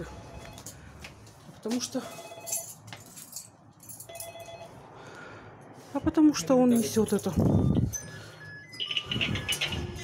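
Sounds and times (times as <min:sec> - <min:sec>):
intercom electronic rings: 0:07.5 - 0:10.0.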